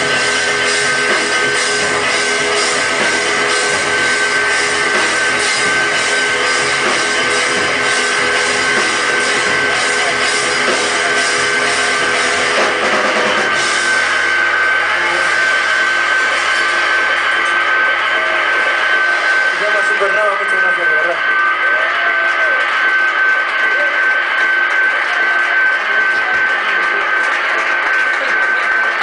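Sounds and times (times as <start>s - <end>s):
live rock band: 0.0s - 29.0s
steady high tone: 0.0s - 29.0s.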